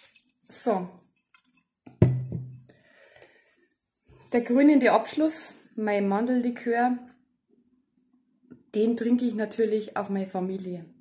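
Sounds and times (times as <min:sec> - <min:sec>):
knocks on a tabletop: 0:02.0 - 0:02.6.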